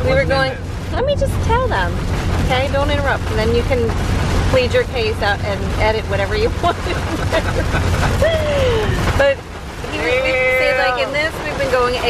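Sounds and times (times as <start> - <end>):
road and rain rumble in car: 0.0 - 12.0.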